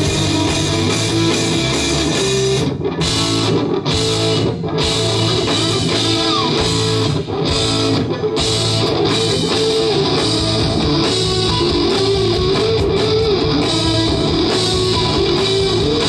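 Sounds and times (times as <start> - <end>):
bass guitar: 0.0 - 16.0
drums: 0.0 - 16.0
electric guitars: 0.0 - 16.0.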